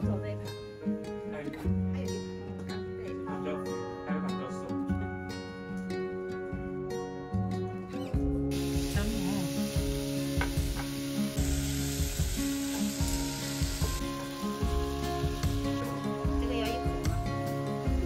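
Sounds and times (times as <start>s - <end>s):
soft background music: 0.0s - 18.0s
beef sizzling on a griddle: 8.5s - 18.0s.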